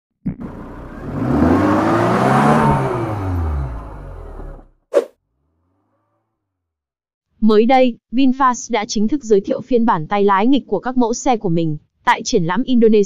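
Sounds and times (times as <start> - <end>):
car engine passing by: 0.4 - 6.4.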